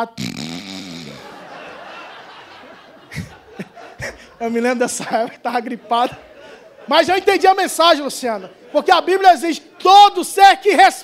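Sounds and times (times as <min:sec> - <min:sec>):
congregation laughing: 0:01.0 - 0:10.0.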